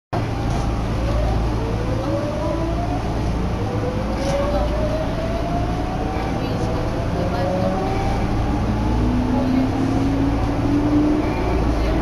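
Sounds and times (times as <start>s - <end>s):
traction motors whining: 0.2s - 12.0s
train low rumble: 0.2s - 12.0s.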